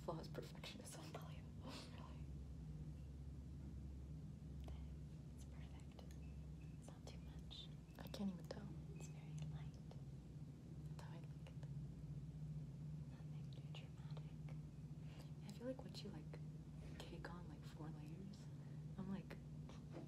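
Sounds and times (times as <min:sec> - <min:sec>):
steady low hum: 0:00.0 - 0:20.0
person whispering: 0:04.6 - 0:06.2, 0:06.9 - 0:10.0, 0:11.0 - 0:11.7, 0:13.1 - 0:14.6.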